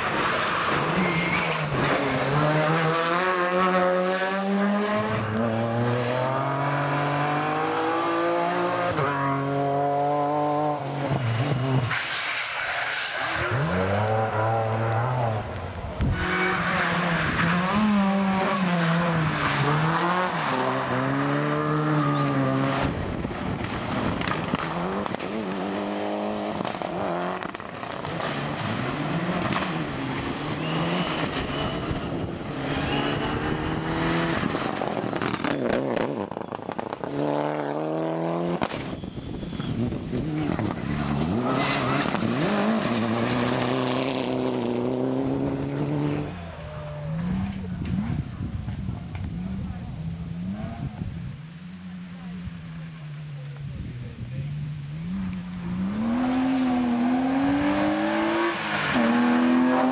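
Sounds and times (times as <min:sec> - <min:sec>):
cars passing on wet tarmac: 0:00.0 - 0:37.8, 0:38.5 - 0:47.6, 0:54.7 - 0:59.9
rally car engines revving: 0:00.0 - 0:59.9.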